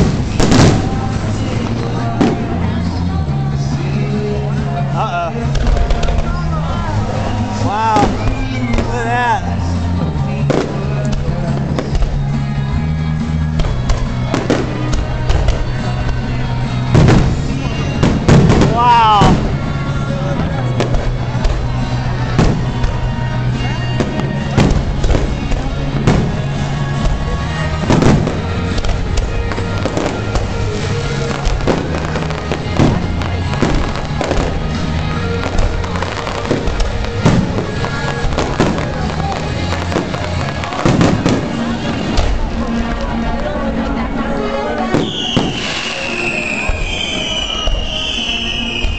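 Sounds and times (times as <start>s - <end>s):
music playing: 0.0s - 48.9s
rising firework whistle: 7.9s - 9.0s, 44.9s - 48.9s
fireworks shells bursting: 44.8s - 48.9s.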